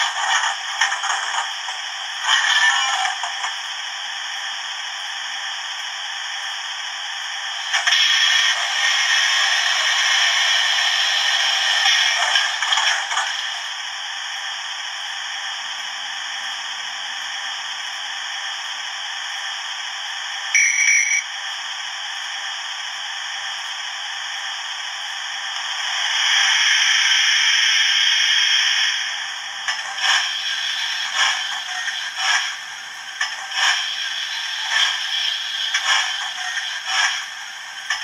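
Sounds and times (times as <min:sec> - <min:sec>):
brief high tone: 0:20.6 - 0:21.3
steam hiss from small speaker: 0:25.7 - 0:38.0.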